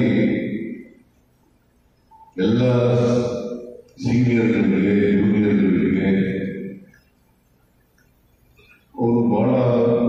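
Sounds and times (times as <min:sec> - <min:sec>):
man speaking into a microphone: 0:00.0 - 0:00.8, 0:02.4 - 0:06.8, 0:08.9 - 0:10.0.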